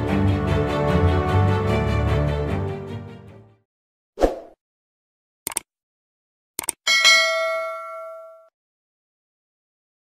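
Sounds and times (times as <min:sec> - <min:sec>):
quick double clicks: 0:05.5 - 0:05.7, 0:06.6 - 0:06.8
notification bell ding: 0:06.9 - 0:08.5.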